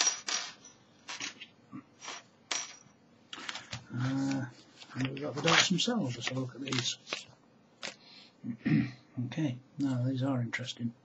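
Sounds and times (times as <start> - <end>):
small metal parts clinking: 0.0 - 2.9.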